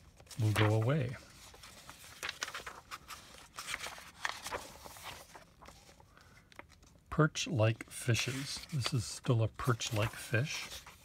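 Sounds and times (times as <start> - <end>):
book pages turning: 0.0 - 11.0.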